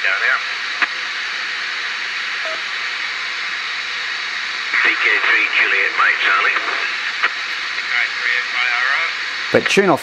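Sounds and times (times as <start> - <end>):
radio speaker hiss: 0.0 - 10.0.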